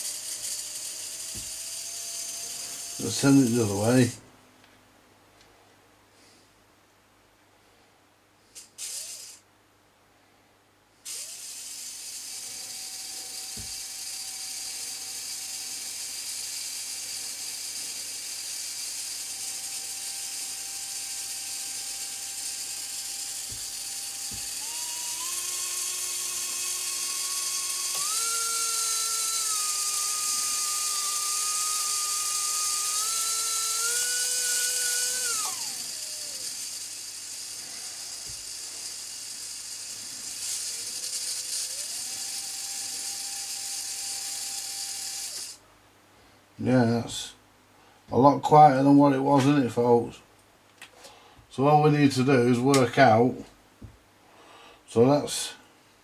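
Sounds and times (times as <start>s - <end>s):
electric motor whirring whine: 0.0s - 4.0s, 8.8s - 9.4s, 11.1s - 45.6s.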